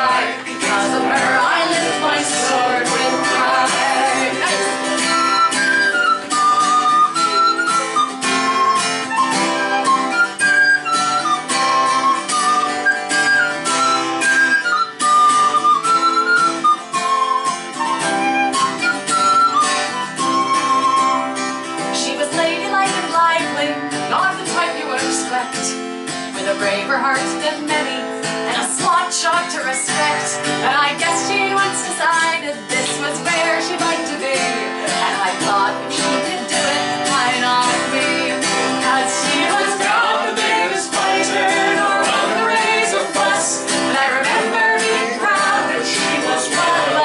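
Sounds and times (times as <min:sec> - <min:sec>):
acoustic guitar strumming: 0:00.0 - 0:47.0
high flute melody: 0:04.8 - 0:21.7.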